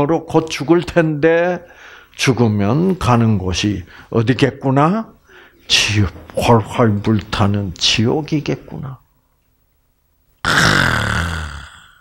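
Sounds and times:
man groaning: 10.4s - 12.0s.

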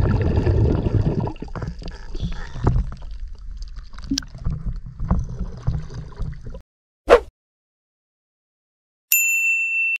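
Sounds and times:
bright bell ding: 9.1s - 10.0s.

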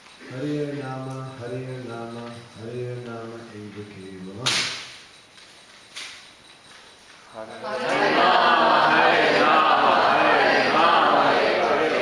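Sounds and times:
man chanting: 0.2s - 4.3s.

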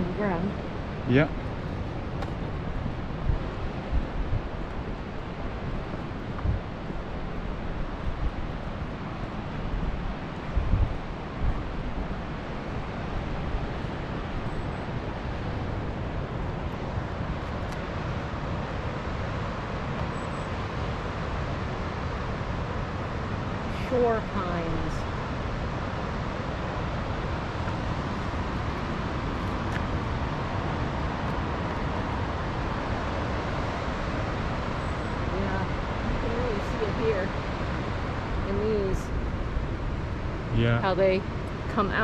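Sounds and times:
wind on microphone: 0.0s - 42.0s.

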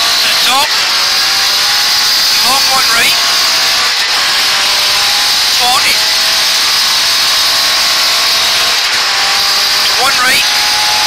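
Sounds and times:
rally car engine running hard: 0.0s - 11.0s
road and wind noise: 0.0s - 11.0s.

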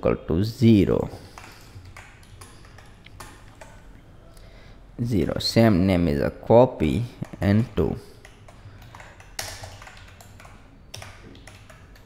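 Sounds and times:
steady low hum: 0.0s - 12.0s
keyboard keys typing: 1.2s - 4.0s, 7.2s - 12.0s.

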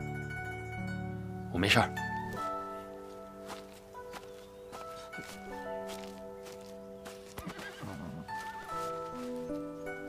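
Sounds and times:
background music with held notes: 0.0s - 10.0s
horse whinnying: 7.4s - 8.6s.

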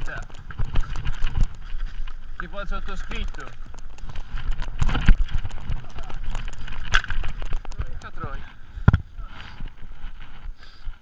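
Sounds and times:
bike knocks and rattles on stones: 0.0s - 9.1s.

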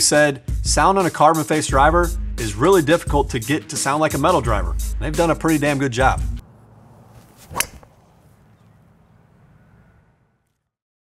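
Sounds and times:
golf club swing swoosh: 6.4s - 10.2s
golf ball struck sharp crack: 6.9s - 9.2s.

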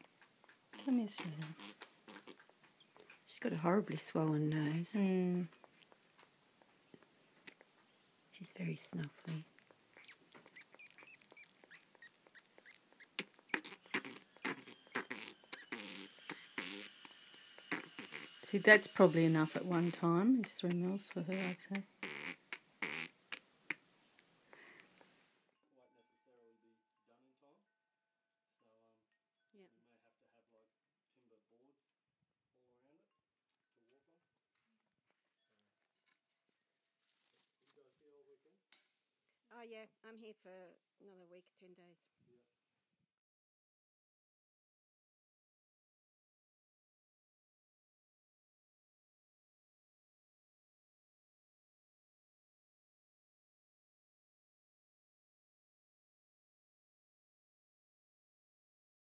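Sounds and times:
small feeding clicks: 8.8s - 18.3s
flying fox snuffling: 8.8s - 23.8s.

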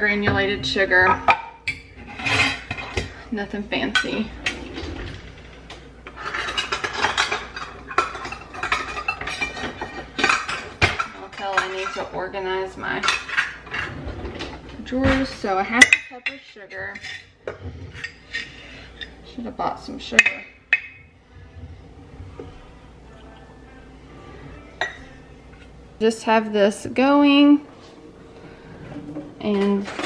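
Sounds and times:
metal utensils clattering in drawer: 3.9s - 17.3s, 29.4s - 30.0s
lid scraping rub: 17.0s - 19.1s.

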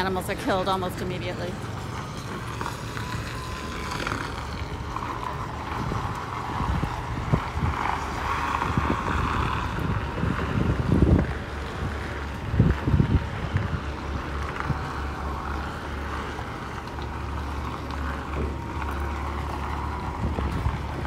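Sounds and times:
diesel truck engine rumbling: 0.0s - 21.0s
wind buffeting microphone: 0.0s - 21.0s.

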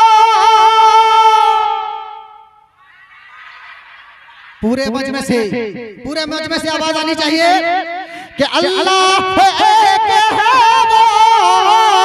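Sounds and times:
man singing through loudspeakers: 0.0s - 2.5s, 4.6s - 12.0s.

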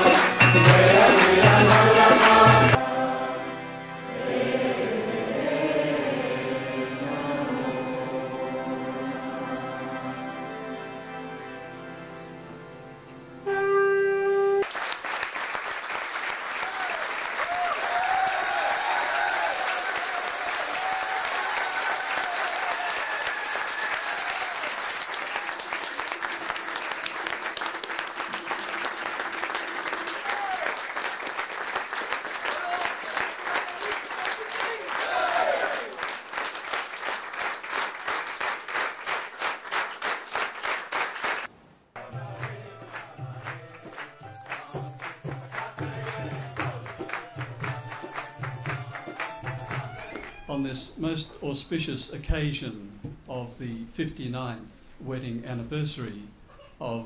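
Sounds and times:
crowd applauding: 0.0s - 2.8s, 14.6s - 50.5s
music with steady beat: 0.0s - 2.8s, 42.0s - 50.2s.

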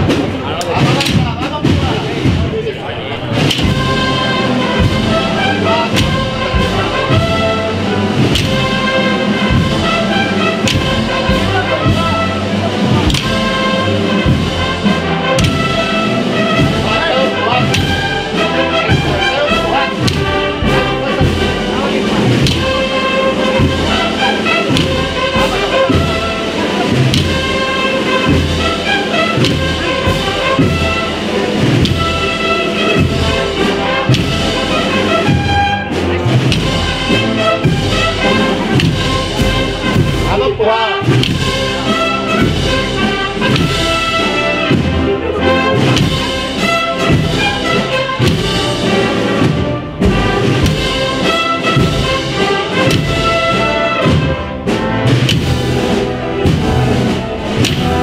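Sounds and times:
brass melody: 0.0s - 58.0s
steady bass drum beat: 0.0s - 58.0s.

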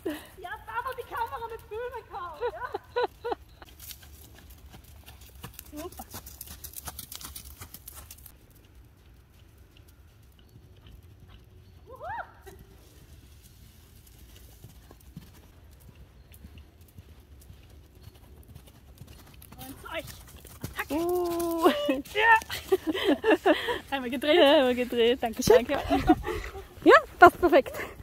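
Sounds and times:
horse hoofbeats cantering on sand: 0.0s - 28.0s.

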